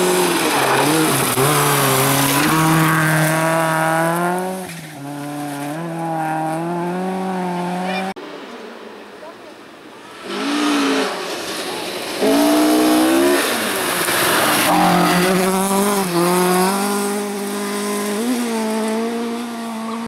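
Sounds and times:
rally car engine revving: 0.0 - 8.2, 10.0 - 20.0
gravel and tyre noise: 0.0 - 20.0.

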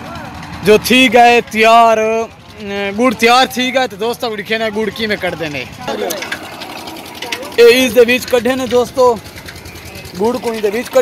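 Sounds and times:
steady mechanical running: 0.0 - 11.0.

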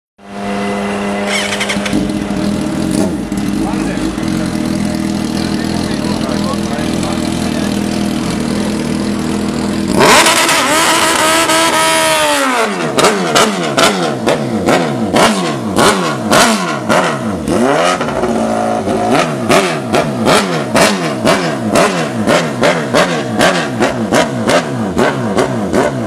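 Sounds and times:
motorcycle engine revving: 0.2 - 26.0.

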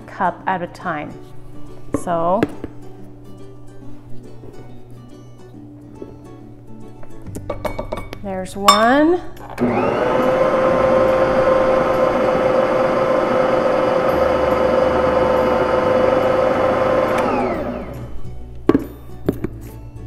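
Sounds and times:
stand mixer motor whine: 9.6 - 18.1.

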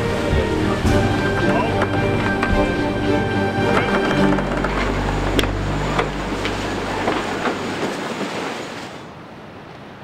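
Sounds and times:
low drone: 0.0 - 7.6.

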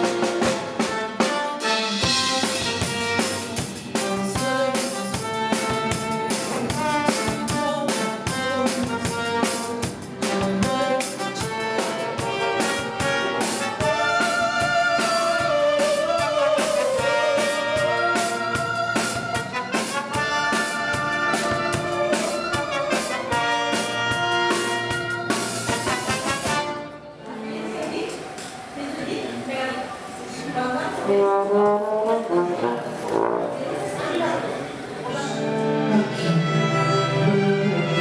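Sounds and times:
orchestra playing: 0.0 - 27.5, 31.0 - 38.0
sustained brass and string notes: 0.0 - 27.7, 30.6 - 38.0.

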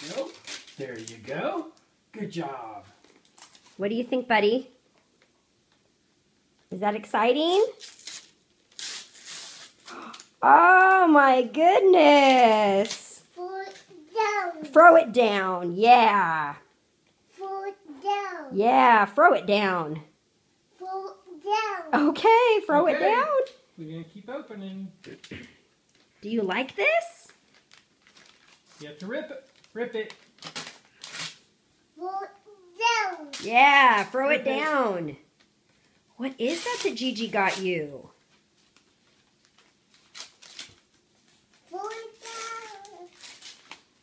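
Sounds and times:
wrapping paper tearing: 0.0 - 1.2, 3.2 - 3.8, 7.5 - 10.3, 12.1 - 14.0, 27.3 - 31.5, 36.4 - 37.8, 38.6 - 44.0.

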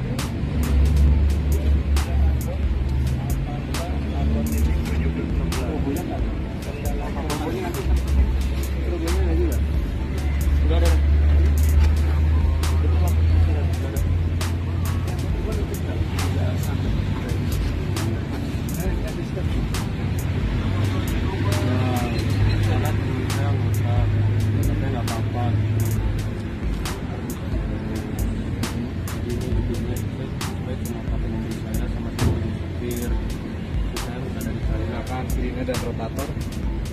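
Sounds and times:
background music: 0.0 - 36.9
indistinct voices: 0.0 - 36.9
low vehicle rumble: 0.0 - 36.9.

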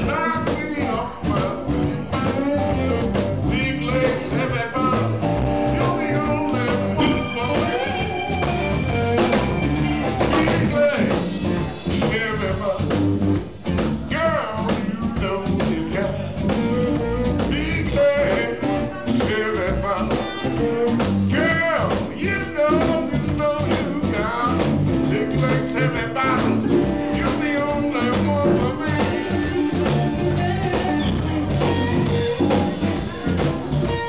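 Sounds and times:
bass guitar: 0.0 - 34.0
drums: 0.0 - 34.0
electric guitar lead: 0.0 - 34.0
keyboard: 0.0 - 34.0.

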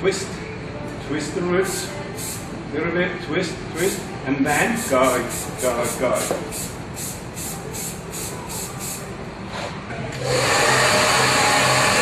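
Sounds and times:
hair dryer blowing: 10.2 - 12.0.

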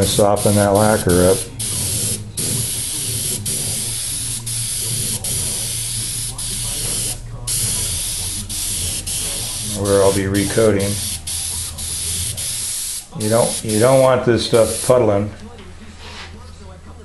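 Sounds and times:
airbrush spraying hiss: 0.0 - 15.2
steady low hum: 0.0 - 17.0.

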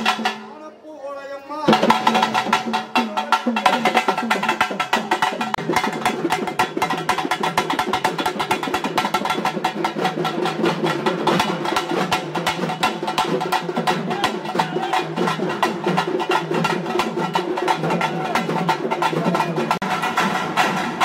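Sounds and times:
drums beaten fast: 0.0 - 0.6, 1.7 - 21.0.

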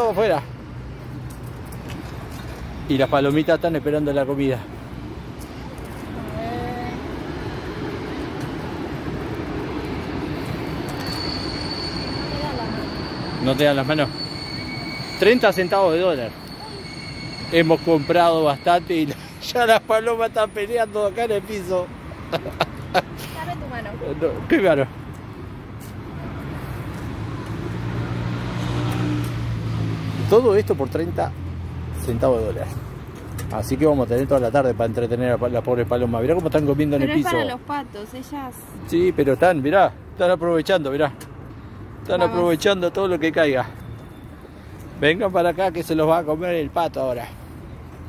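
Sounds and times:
thin high whine: 10.4 - 19.2.

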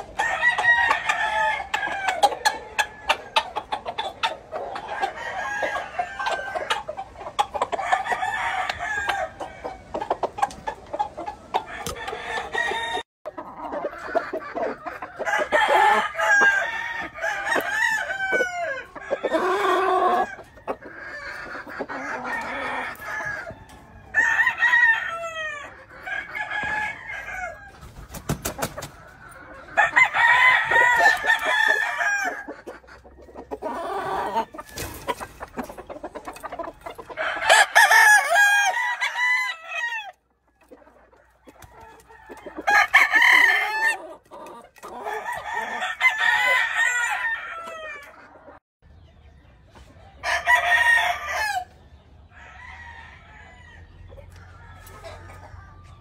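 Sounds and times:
roosters crowing: 0.0 - 10.2, 11.5 - 40.3, 41.4 - 48.3, 50.2 - 56.0
chickens clucking: 0.0 - 56.0.

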